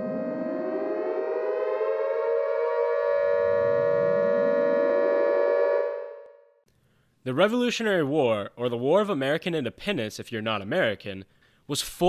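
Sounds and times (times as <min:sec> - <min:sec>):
siren-like rising tone: 0:00.0 - 0:06.6.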